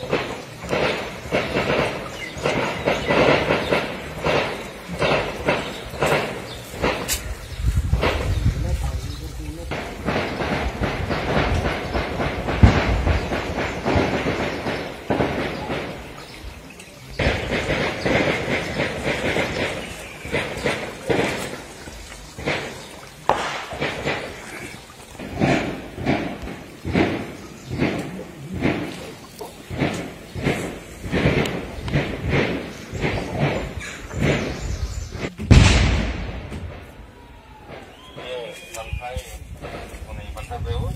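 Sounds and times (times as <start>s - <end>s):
people talking: 8.2s - 10.2s, 15.2s - 21.6s, 27.9s - 30.0s, 33.0s - 33.8s, 37.2s - 40.9s.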